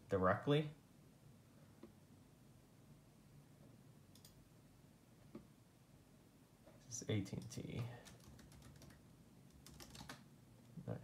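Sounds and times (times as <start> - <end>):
faint keyboard typing: 4.1 - 4.4, 7.1 - 10.8.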